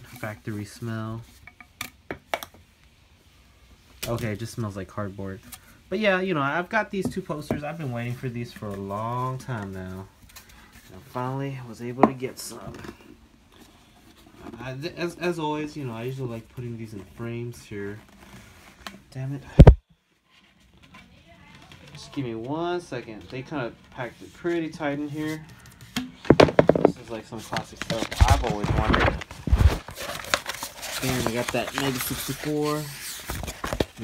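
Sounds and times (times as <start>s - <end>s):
man speaking: 4.0s - 10.1s, 26.5s - 29.2s, 31.0s - 33.0s
packaging knocks and crinkles: 26.2s - 34.0s.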